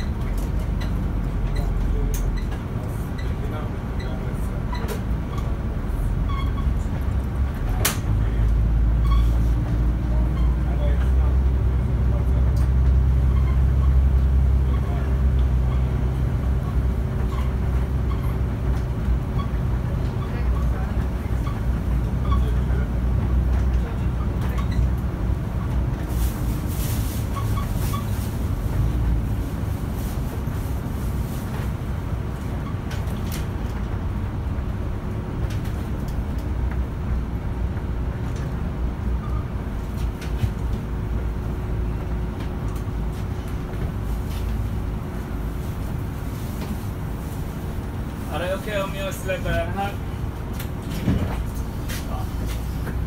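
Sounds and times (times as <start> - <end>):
bus rumbling: 0.0 - 53.0.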